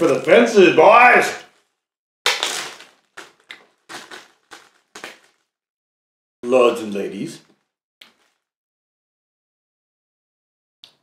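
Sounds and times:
crackling crunching noises: 0.0 - 5.6.

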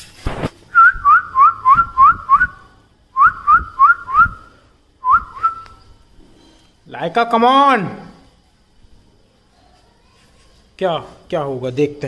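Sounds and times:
person whistling rising chirps: 0.7 - 5.9.

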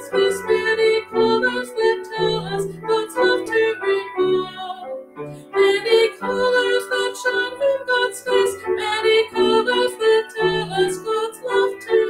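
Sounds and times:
piano accompaniment: 0.0 - 12.0
woman singing a hymn: 0.0 - 12.0.

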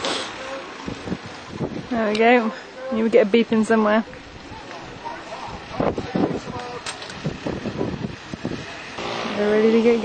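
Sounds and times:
wind on microphone: 0.8 - 2.4, 4.3 - 10.0.

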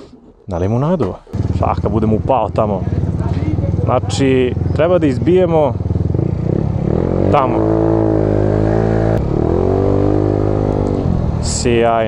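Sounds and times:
motorcycle engine under throttle: 1.3 - 12.0.

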